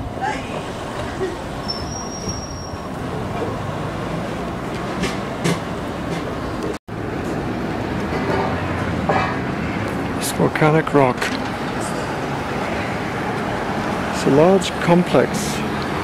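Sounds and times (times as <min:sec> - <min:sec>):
city road traffic roar: 0:00.0 - 0:16.0
high whistle: 0:01.6 - 0:02.8.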